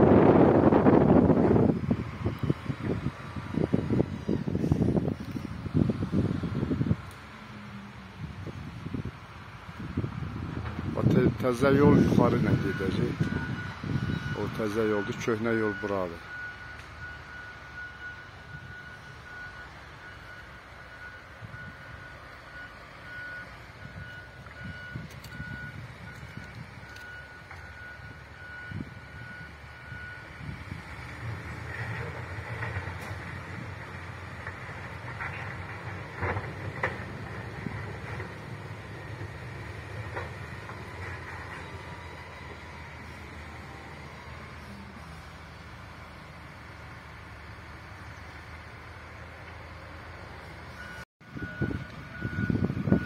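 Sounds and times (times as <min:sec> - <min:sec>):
diesel engine rumbling: 0:00.0 - 0:53.0
reversing alarm beeping: 0:11.0 - 0:45.2, 0:50.7 - 0:53.0.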